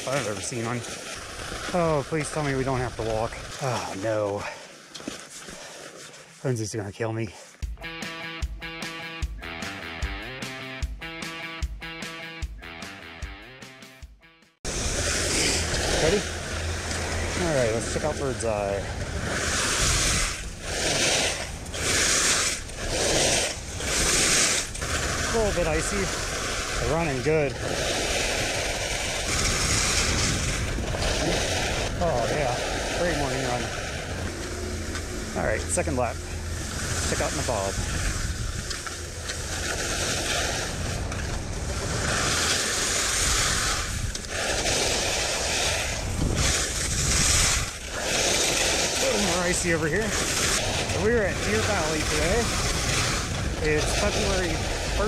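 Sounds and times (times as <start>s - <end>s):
skis scraping on icy snow: 0.0s - 7.3s, 14.7s - 55.0s
wind rumble on microphone: 14.7s - 55.0s.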